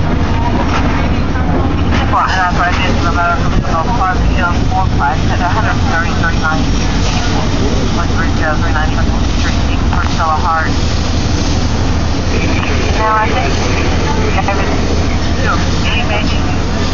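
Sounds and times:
indistinct voices talking: 0:00.0 - 0:16.9
low engine drone: 0:00.0 - 0:16.9.

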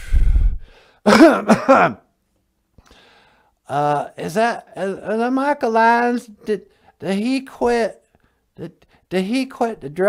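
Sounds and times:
man laughing: 0:01.1 - 0:02.0.

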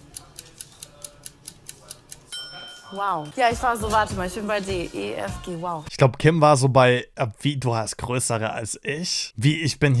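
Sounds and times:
clock ticking: 0:00.0 - 0:04.4.

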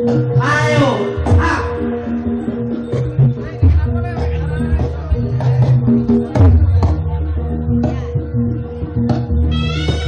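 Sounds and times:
heavy drum beats: 0:00.0 - 0:02.0, 0:09.0 - 0:10.0.

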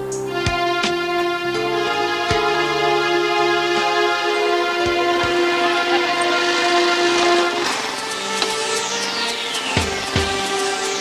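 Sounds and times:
sustained synthesizer chord: 0:00.0 - 0:11.0.

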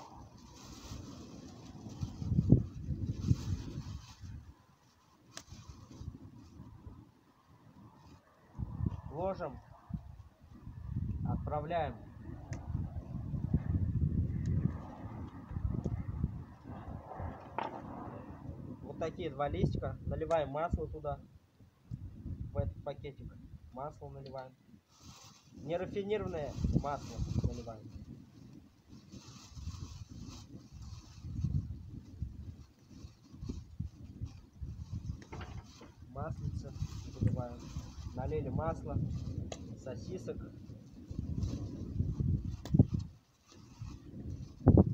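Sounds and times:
plastic bag rustling: 0:00.0 - 0:06.7, 0:24.9 - 0:27.9, 0:28.9 - 0:38.3
wind rumble on microphone: 0:00.0 - 0:44.9.

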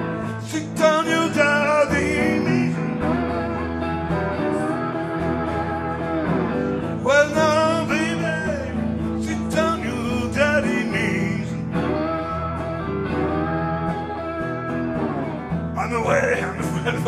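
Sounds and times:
bending guitar lead line: 0:00.0 - 0:17.0
blues band playing: 0:00.0 - 0:17.0.

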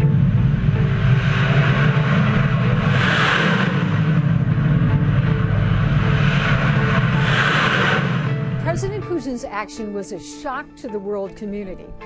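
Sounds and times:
rocket motor roar: 0:00.0 - 0:09.1
deep rumble: 0:00.0 - 0:09.9.

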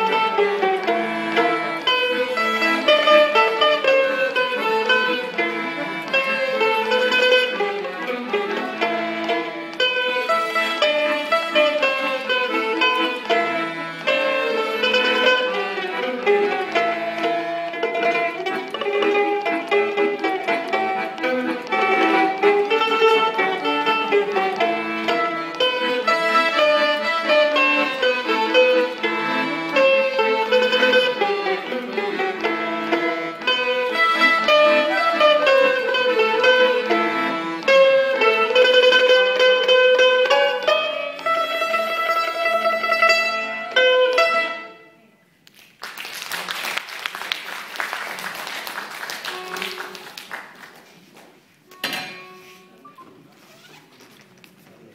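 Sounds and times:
small string and accordion ensemble: 0:00.0 - 0:45.2, 0:47.5 - 0:50.4
audience clapping: 0:45.4 - 0:51.5.

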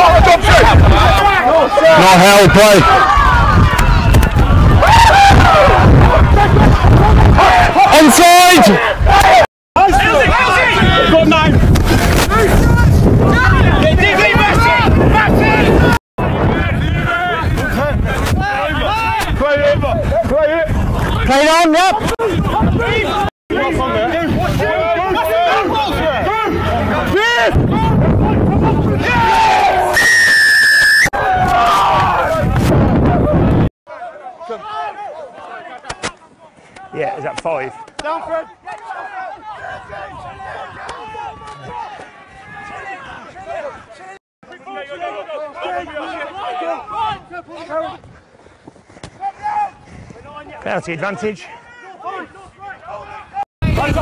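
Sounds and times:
voices shouting: 0:00.0 - 0:11.6, 0:12.2 - 0:30.3, 0:31.0 - 0:48.1, 0:49.1 - 0:54.0
referee's whistle blast: 0:29.9 - 0:31.2.

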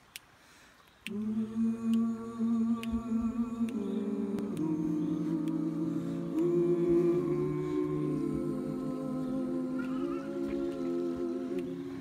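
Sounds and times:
voices singing in harmony: 0:01.1 - 0:12.0.

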